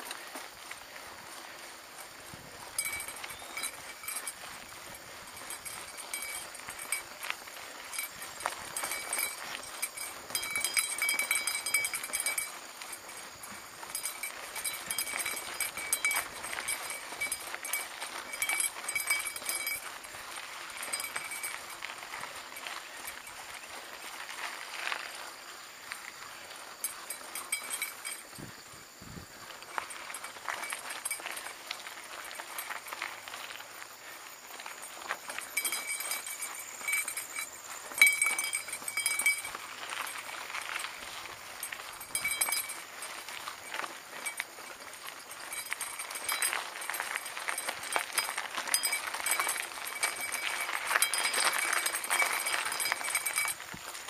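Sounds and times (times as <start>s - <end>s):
bike rattling over gravel: 0.0s - 54.0s.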